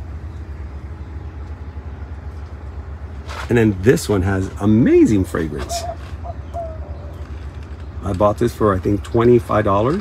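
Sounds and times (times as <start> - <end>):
steady low hum: 0.0 - 10.0
bird calling faintly: 5.6 - 8.0.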